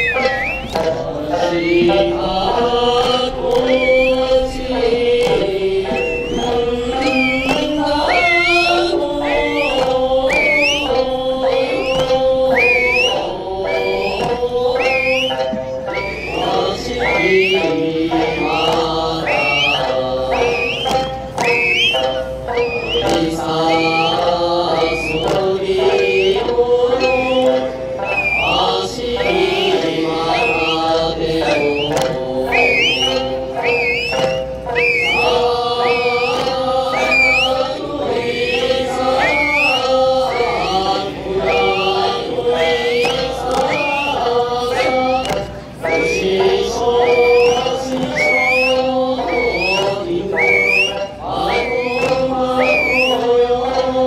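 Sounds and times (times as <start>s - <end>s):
short rising whistle-like calls: 0.0s - 2.2s, 3.6s - 4.6s, 5.8s - 45.2s, 45.8s - 53.3s
hand drums struck: 0.0s - 50.2s
voices chanting a folk song: 0.0s - 54.0s.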